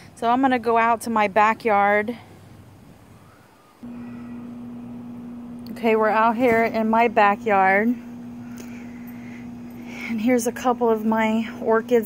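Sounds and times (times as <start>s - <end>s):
steady low hum: 3.8s - 12.0s.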